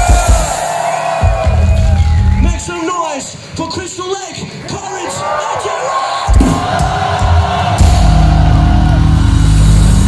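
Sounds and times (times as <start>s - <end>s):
crowd cheering and whooping: 0.0s - 2.9s, 5.0s - 10.0s
deep bass notes: 7.2s - 10.0s.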